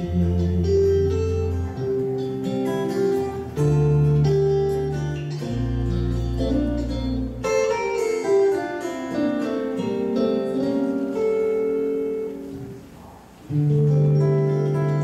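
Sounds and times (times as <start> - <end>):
plucked guitar: 0.0 - 15.0
sustained bass notes: 0.0 - 15.0.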